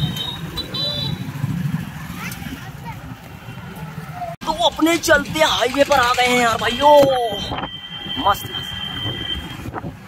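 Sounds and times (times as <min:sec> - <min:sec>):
motorcycle engines running: 0:00.0 - 0:07.4
low traffic rumble: 0:00.0 - 0:10.0
passers-by voices: 0:01.0 - 0:07.6.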